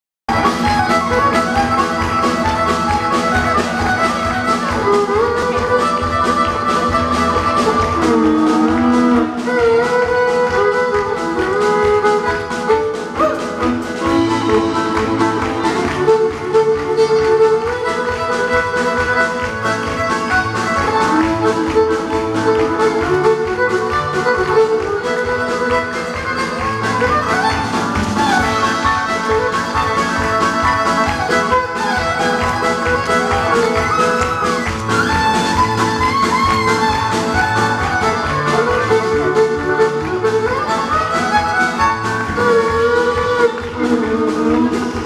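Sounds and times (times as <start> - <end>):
fiddle melody: 0.3 - 45.0
live band playing: 0.3 - 45.0.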